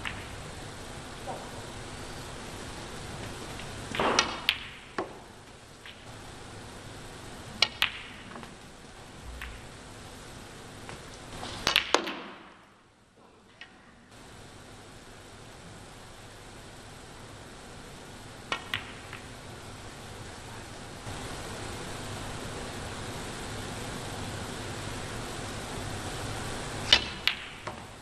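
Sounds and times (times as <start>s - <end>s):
snooker balls clicking: 0.0s - 0.4s, 3.2s - 6.2s, 7.5s - 9.8s, 10.8s - 12.7s, 18.5s - 19.4s, 26.8s - 28.0s.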